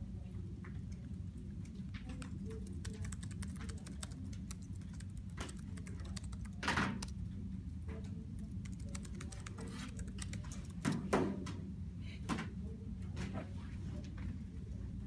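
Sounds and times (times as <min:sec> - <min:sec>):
low room hum: 0:00.0 - 0:15.0
laptop keyboard typing: 0:01.0 - 0:07.2, 0:08.4 - 0:11.1.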